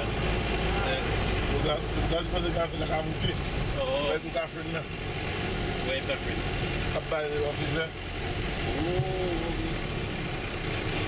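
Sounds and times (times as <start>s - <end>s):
bus rumbling: 0.0s - 11.0s.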